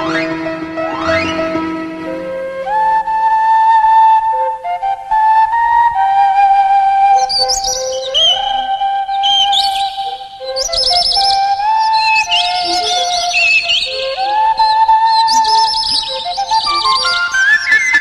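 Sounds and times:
sliding flute-like melody: 0.0s - 18.0s
high warbling bird trills: 7.2s - 18.0s.

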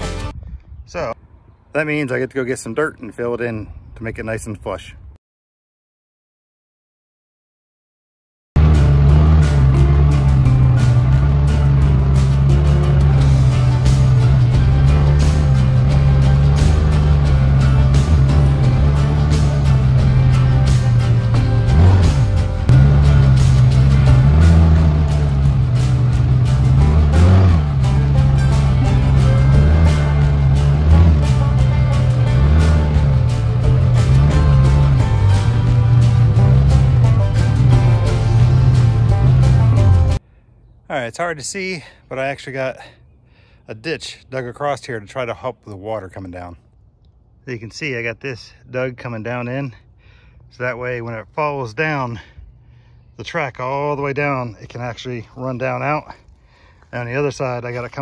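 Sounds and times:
music: 0.0s - 0.4s, 8.6s - 40.2s
off-road vehicle engine running: 8.6s - 40.2s.

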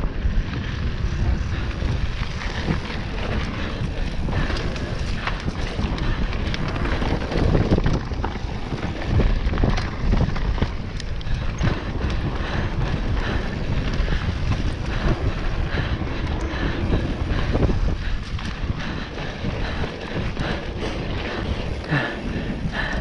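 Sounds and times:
bike rattling and knocking: 0.0s - 23.0s
wind rushing over microphone: 0.0s - 23.0s.

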